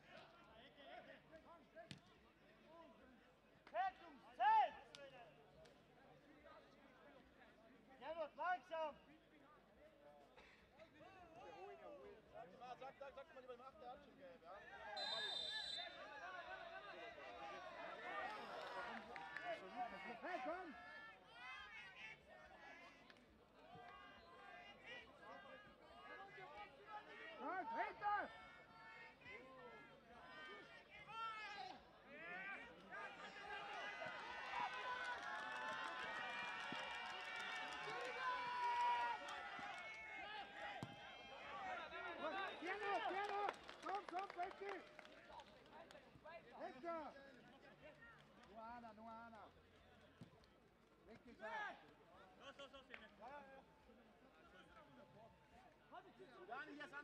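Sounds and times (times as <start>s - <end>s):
people shouting at a football match: 14.6s - 22.9s, 23.8s - 43.5s.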